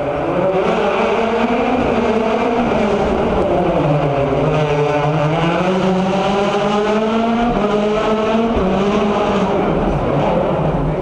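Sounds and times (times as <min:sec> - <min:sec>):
rally car engine accelerating hard: 0:00.0 - 0:11.0.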